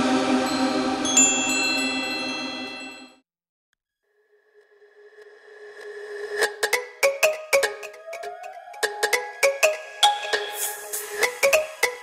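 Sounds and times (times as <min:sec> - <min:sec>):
held chord with chime tones: 0:00.0 - 0:03.2.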